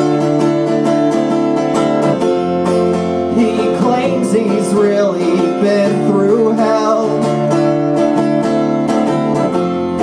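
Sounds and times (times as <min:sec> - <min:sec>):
electric bass: 0:00.0 - 0:10.0
strummed acoustic guitar: 0:00.0 - 0:10.0.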